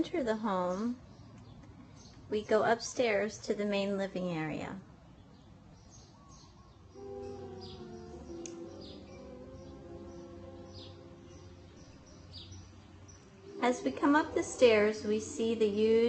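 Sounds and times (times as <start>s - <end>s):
faint bird chirps: 5.1s - 15.5s
soft sustained musical tones: 6.2s - 16.0s.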